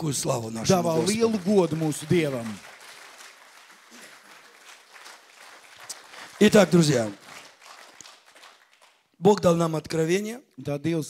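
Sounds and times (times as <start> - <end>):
congregation applauding: 0.6 - 9.6.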